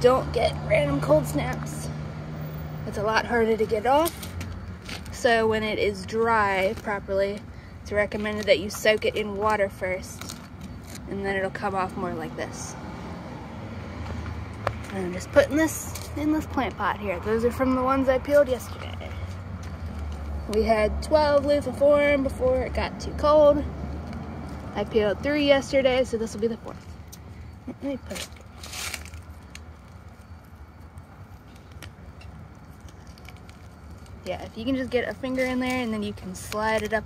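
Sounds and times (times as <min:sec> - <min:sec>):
faint clicks and crackles: 0:28.1 - 0:37.0.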